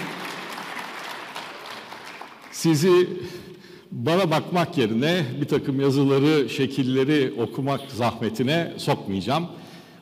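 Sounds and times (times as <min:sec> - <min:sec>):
light applause: 0:00.0 - 0:02.8.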